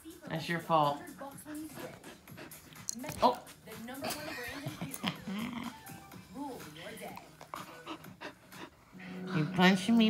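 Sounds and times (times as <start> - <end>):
puppy panting: 1.0 - 9.9.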